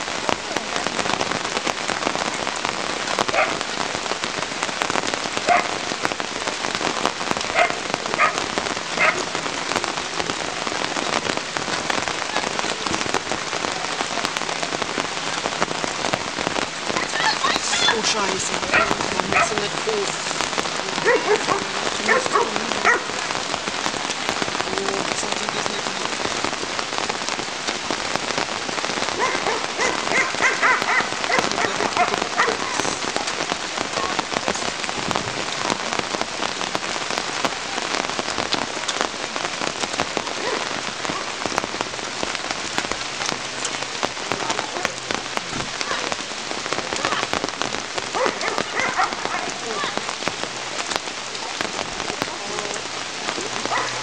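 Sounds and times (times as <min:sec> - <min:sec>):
steady rain patter: 0:00.0 - 0:54.0.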